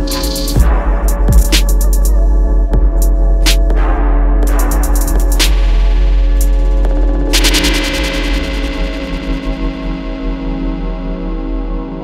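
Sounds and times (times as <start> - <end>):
deep sub-bass: 0.0 - 12.0.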